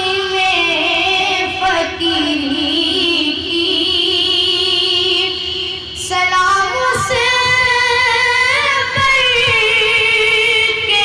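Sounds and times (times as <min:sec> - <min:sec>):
boy singing into a microphone: 0:00.0 - 0:11.0.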